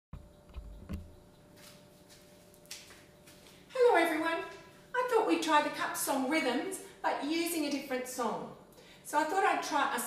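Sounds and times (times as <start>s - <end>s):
faint steady hum: 0.2s - 10.0s.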